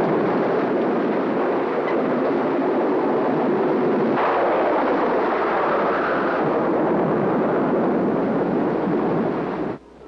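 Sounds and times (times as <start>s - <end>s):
wind and surf rushing: 0.0s - 9.8s
wave crash: 4.0s - 8.0s.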